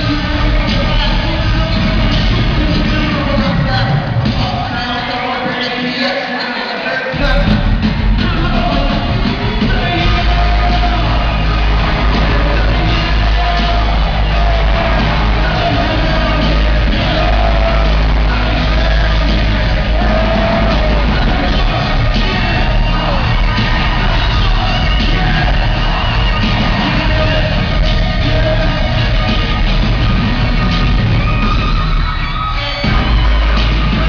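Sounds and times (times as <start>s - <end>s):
loud hip-hop music: 0.0s - 34.0s.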